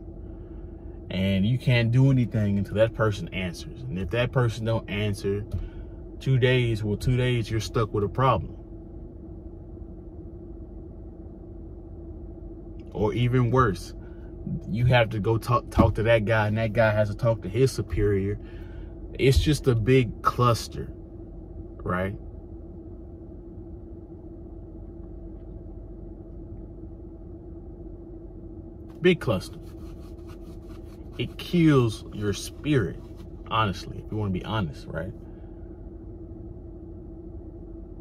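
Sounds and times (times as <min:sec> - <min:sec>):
car idling hum inside cabin: 0:00.0 - 0:38.0.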